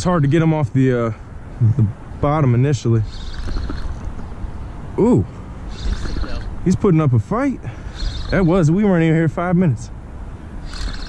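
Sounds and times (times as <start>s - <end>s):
wind rumbling on microphone: 1.6s - 4.7s, 5.6s - 6.9s
fishing reel whirring: 3.1s - 4.1s, 5.7s - 6.5s, 7.9s - 8.6s, 10.6s - 11.0s.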